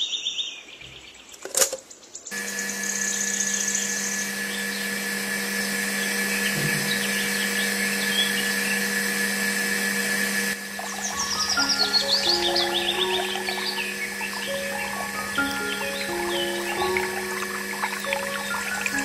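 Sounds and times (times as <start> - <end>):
water pump humming: 2.4 - 19.0.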